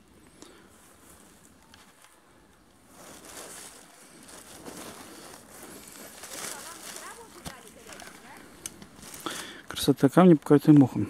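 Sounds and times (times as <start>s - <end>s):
rustling of shrubs and ferns: 0.0s - 11.0s
footsteps through undergrowth: 0.6s - 11.0s.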